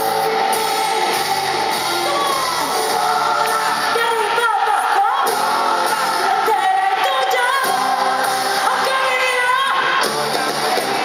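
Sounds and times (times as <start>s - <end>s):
pop-rock band playing: 0.0s - 11.0s
woman singing into a microphone: 3.1s - 10.0s.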